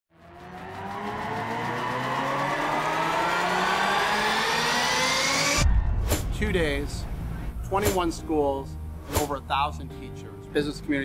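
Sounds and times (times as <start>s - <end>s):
rising pitch sweep: 0.1s - 7.8s
deep bass hit: 5.6s - 9.4s.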